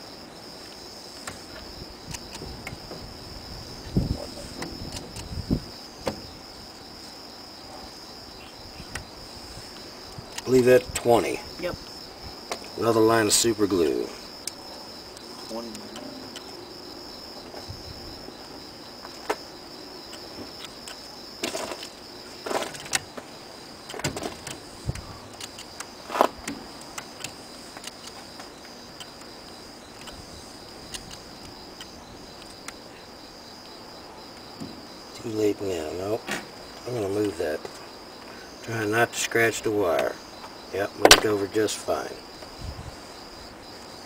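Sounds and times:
crickets chirping: 0.0s - 44.0s
sharp clicks: 23.8s - 28.2s.

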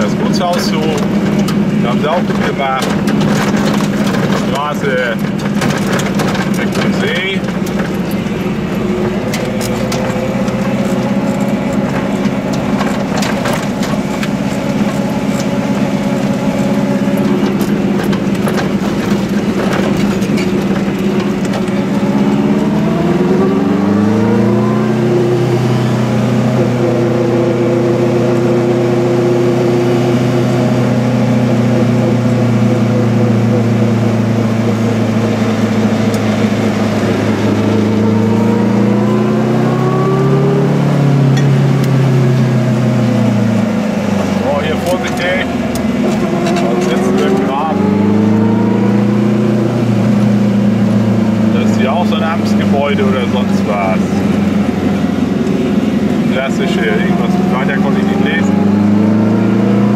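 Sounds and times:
small two-stroke car engine: 0.0s - 59.9s.

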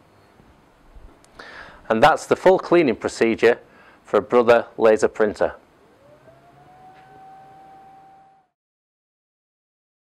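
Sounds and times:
low hum: 5.6s - 8.6s
laser printer whine: 5.7s - 8.6s.

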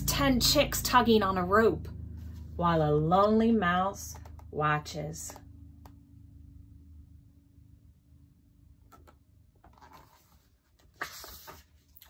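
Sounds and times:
paper rustling: 9.6s - 12.0s.

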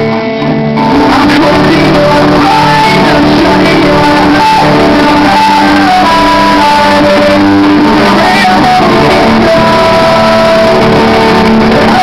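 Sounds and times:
drums: 0.0s - 12.0s
electric guitar: 0.0s - 12.0s
man singing: 0.8s - 12.0s.

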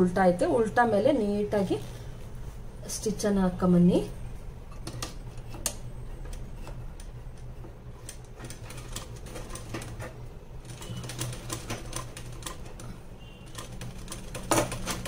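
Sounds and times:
sewing machine hum: 7.9s - 15.0s.

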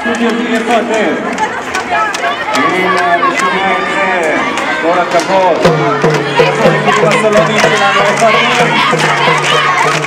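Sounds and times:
girls talking and calling: 0.0s - 10.0s.

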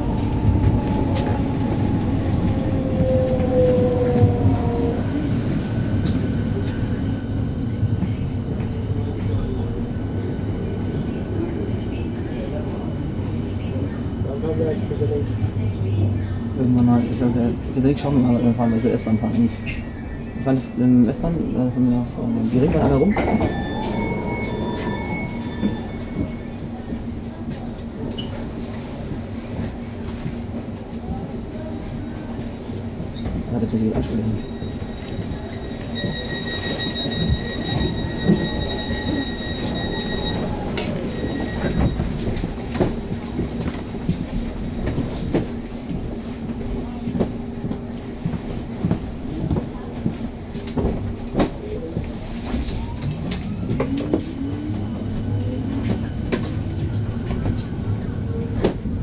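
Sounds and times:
electric train hum: 0.0s - 59.0s.

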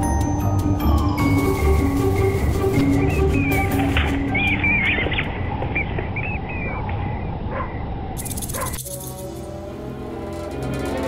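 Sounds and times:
bats squeaking: 2.8s - 6.8s, 8.2s - 9.6s.

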